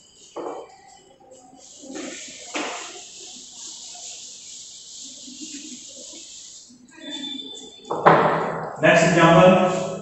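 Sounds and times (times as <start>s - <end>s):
duster wiping chalkboard: 1.6s - 7.5s, 8.9s - 10.0s.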